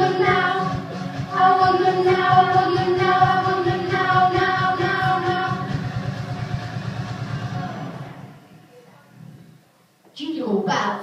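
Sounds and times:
backing track music over pa: 0:00.0 - 0:08.6.

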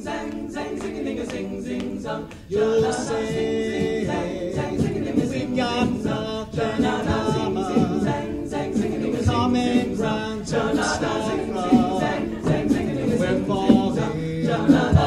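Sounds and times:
beatboxed percussion: 0:00.0 - 0:15.0
vocal group singing in harmony: 0:00.0 - 0:15.0.

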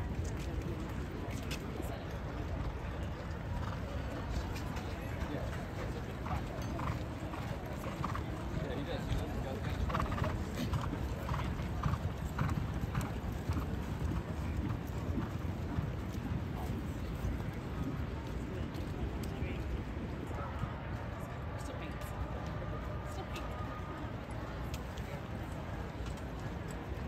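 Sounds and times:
horse hoofbeats on dirt: 0:05.4 - 0:18.1.

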